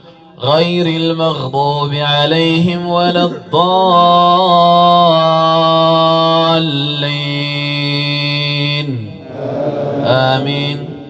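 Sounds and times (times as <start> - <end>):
man reciting in melodic chant: 0.0 - 11.0.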